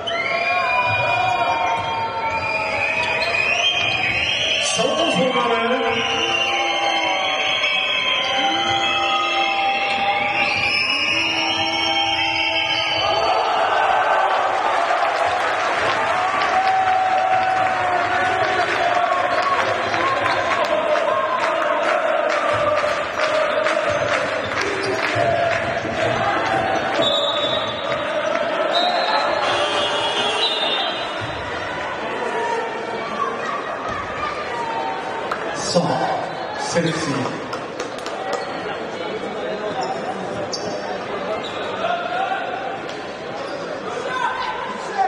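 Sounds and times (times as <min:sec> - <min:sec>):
crowd chanting and cheering: 0:00.0 - 0:39.6.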